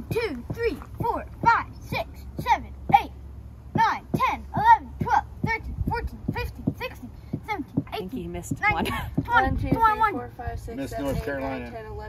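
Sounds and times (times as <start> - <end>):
child counting aloud: 0.0 - 11.6.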